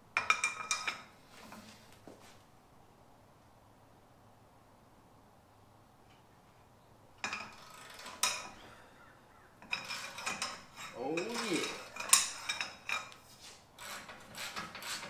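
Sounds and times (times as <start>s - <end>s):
metal grinding and scraping: 7.2s - 8.8s, 9.6s - 15.0s
short metal creak: 7.3s - 8.8s.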